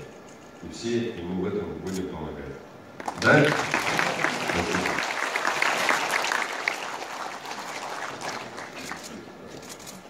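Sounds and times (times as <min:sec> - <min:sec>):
audience applauding: 0:03.0 - 0:09.4.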